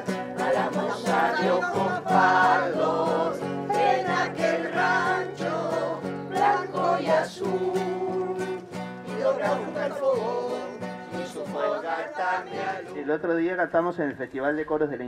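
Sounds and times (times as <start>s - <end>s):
small choir singing: 0.0s - 13.0s
strummed acoustic guitar: 0.0s - 13.1s.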